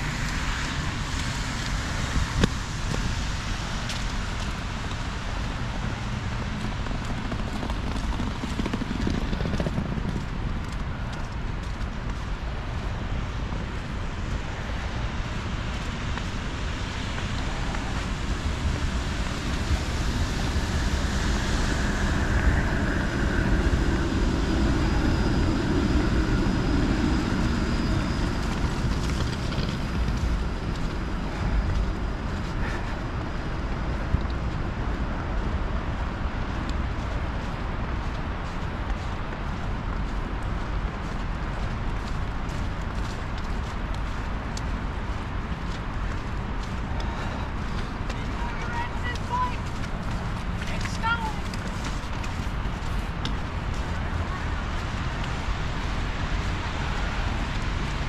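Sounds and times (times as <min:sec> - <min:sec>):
city traffic noise: 0:00.0 - 0:58.0
streetcar passing with whine: 0:00.0 - 0:58.0
wind rumble on microphone: 0:00.0 - 0:58.0.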